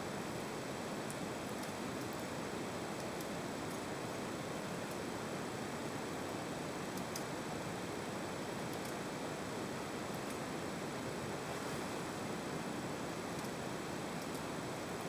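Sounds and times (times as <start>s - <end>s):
background hiss: 0.0s - 15.0s.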